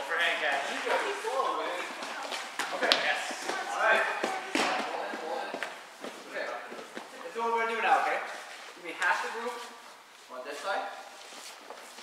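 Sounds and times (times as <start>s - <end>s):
indistinct voices talking: 0.0s - 9.4s.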